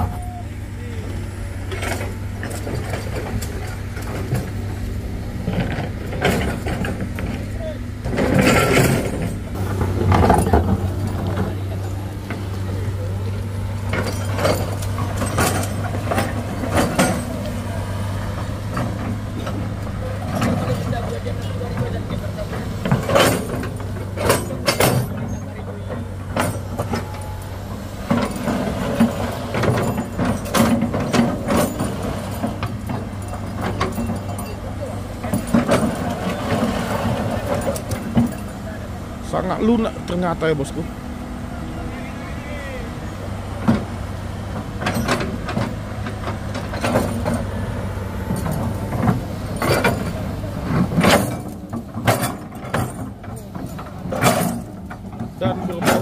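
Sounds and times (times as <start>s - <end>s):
people talking: 0.0s - 9.0s, 9.6s - 43.9s, 52.7s - 56.0s
diesel excavator engine: 0.0s - 56.0s.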